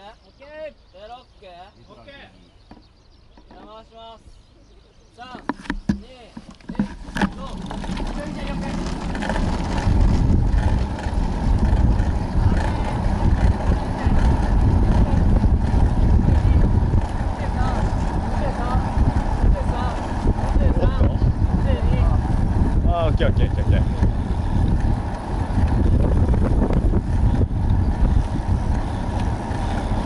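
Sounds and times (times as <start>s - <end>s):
wind noise on microphone: 6.7s - 30.0s.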